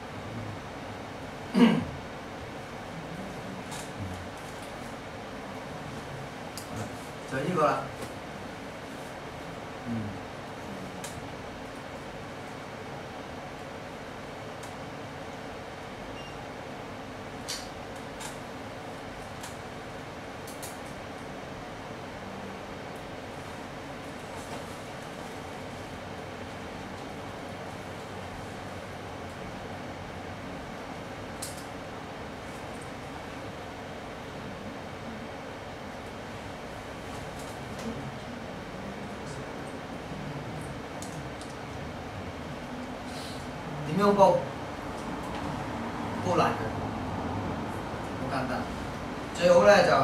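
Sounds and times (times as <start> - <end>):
air conditioner humming: 0.0 - 50.0
room noise hiss: 0.0 - 50.0.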